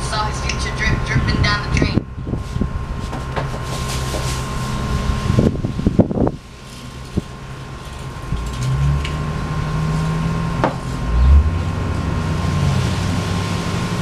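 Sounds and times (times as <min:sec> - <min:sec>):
low hum: 0:00.0 - 0:14.0
low rumble and hiss: 0:00.0 - 0:14.0.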